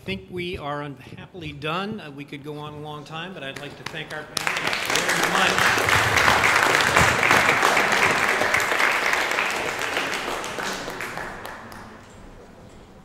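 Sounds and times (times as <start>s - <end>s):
audience applauding: 3.6s - 12.4s.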